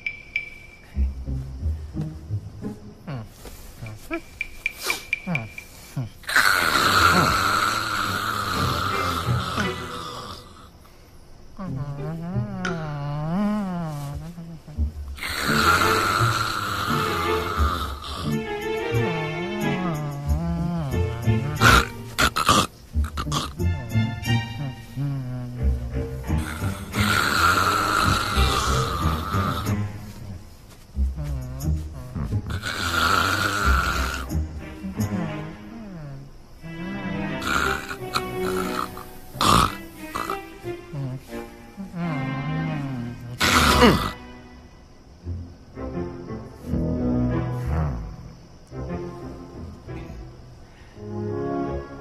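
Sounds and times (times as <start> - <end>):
comedy film music: 0.0 - 10.6, 11.6 - 52.0
loud rasping snore: 5.4 - 10.8, 11.6 - 18.5, 19.7 - 23.8, 24.6 - 29.9, 31.2 - 36.3, 37.4 - 44.2, 47.6 - 48.2.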